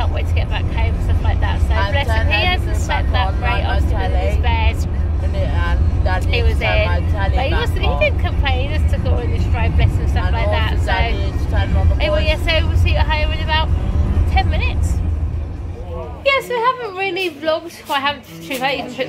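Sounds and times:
people talking: 0.0s - 15.0s, 15.8s - 19.0s
car cabin road rumble: 0.0s - 16.3s.

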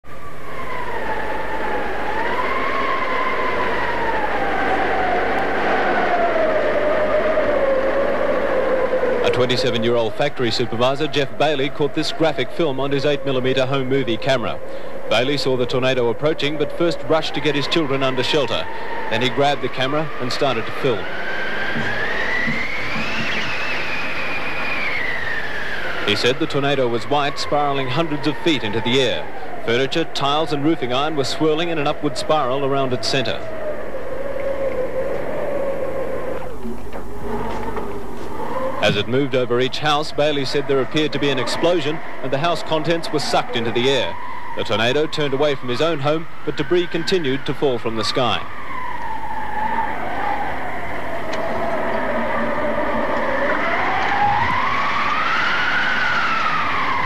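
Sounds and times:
howling wind: 0.0s - 57.0s.

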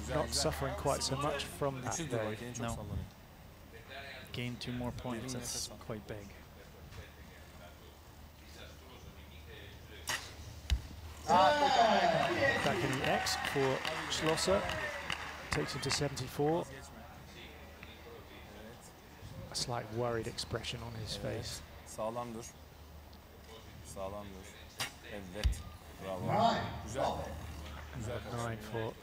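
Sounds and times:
arrow striking target: 10.0s - 10.8s.

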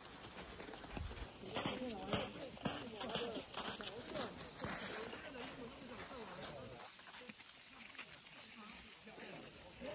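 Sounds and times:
footsteps crunching on snow: 0.0s - 9.9s
people talking: 1.3s - 9.9s.

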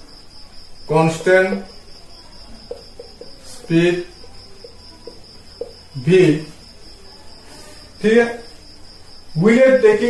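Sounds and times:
cricket trilling: 0.0s - 10.0s.

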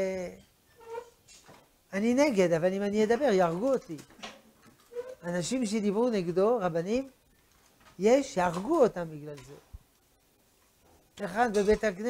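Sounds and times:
man lecturing: 1.9s - 4.1s, 5.2s - 7.2s, 8.0s - 9.6s, 11.2s - 12.0s.

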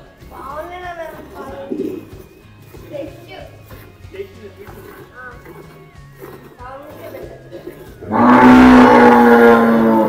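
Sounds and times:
cow mooing: 4.6s - 10.0s.

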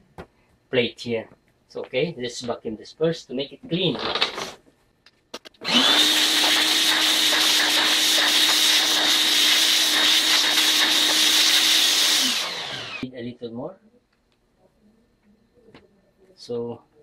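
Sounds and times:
shop vacuum whining: 5.6s - 13.0s.

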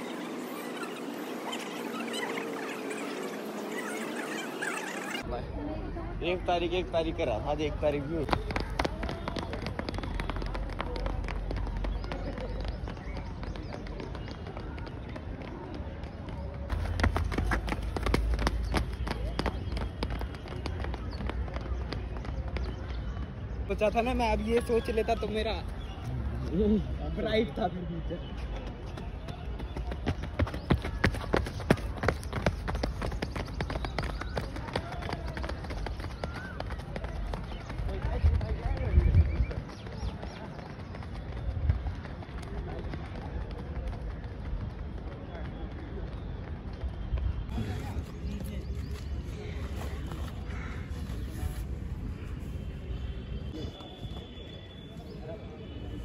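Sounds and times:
footfalls of runners on grass: 7.9s - 26.0s, 28.2s - 55.2s.

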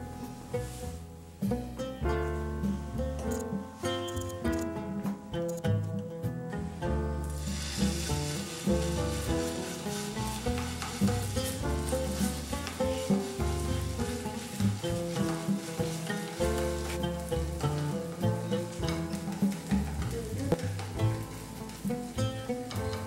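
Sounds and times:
plucked guitar music: 0.0s - 23.0s
dough sizzling on griddle: 0.1s - 3.9s, 6.8s - 23.0s.

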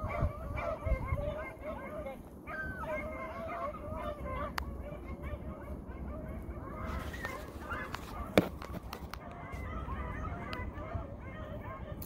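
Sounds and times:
hounds baying: 0.0s - 12.0s.

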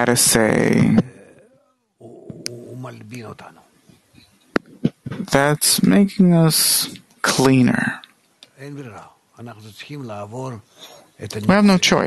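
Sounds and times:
man's drawn-out hesitation sound: 2.0s - 3.6s, 8.6s - 11.9s.

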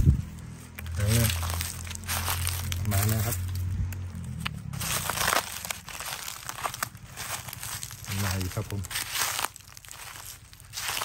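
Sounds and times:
dry leaves crunching: 0.0s - 11.0s.

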